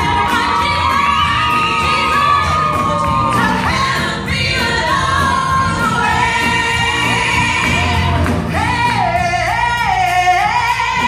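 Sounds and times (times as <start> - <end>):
woman singing gospel song: 0.0 - 11.0.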